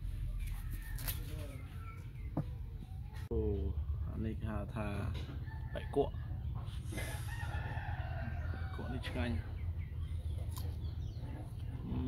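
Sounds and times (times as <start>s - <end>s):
rooster crowing: 7.0s - 9.2s.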